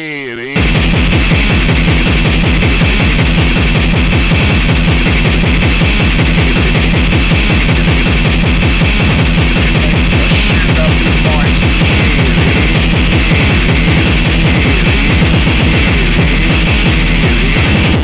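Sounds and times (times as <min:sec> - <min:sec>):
harsh distorted extreme music: 0:00.1 - 0:18.0.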